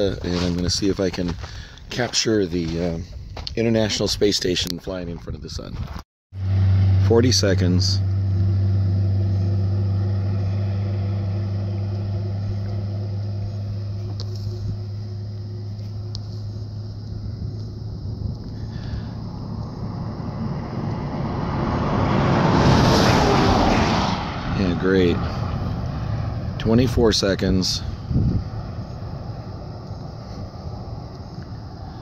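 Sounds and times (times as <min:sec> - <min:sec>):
vehicle engine idling: 0:06.4 - 0:21.6, 0:24.5 - 0:32.0
vehicle passing by: 0:06.4 - 0:32.0.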